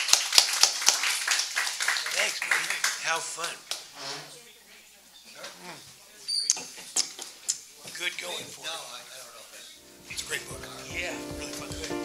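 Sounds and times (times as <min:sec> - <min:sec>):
sharp claps close by: 0:00.0 - 0:03.9
audience applauding: 0:00.0 - 0:04.0, 0:10.1 - 0:12.0.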